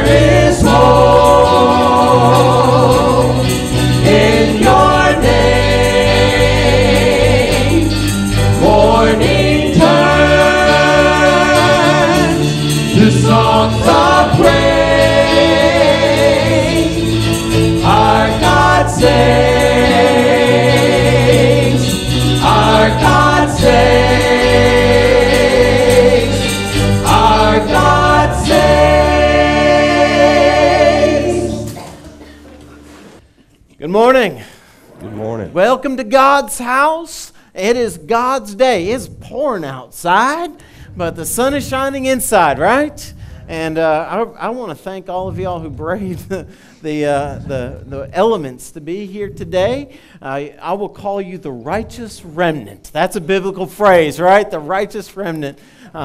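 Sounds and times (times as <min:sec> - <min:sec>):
keyboard: 0:00.0 - 0:33.0
bass guitar: 0:00.0 - 0:33.1, 0:40.7 - 0:50.0
choir singing: 0:00.0 - 0:33.2, 0:45.2 - 0:48.2.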